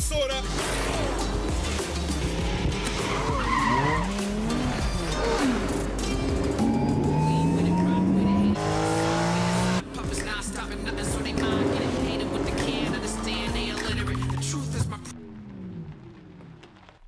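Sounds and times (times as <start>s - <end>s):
music: 0.0s - 15.2s
car engines revving: 0.2s - 16.9s
tyres squealing and skidding: 0.4s - 9.6s.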